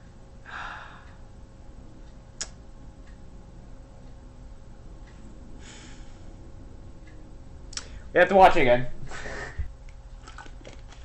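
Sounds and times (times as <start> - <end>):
low room hum: 0.0 - 11.0
person exhaling: 0.4 - 1.2, 5.6 - 6.2, 9.1 - 9.7.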